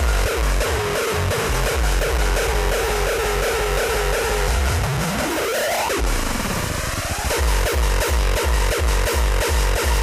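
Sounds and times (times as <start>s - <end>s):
dense noisy synths: 0.0s - 10.0s
distorted kick drum beat: 0.0s - 10.0s.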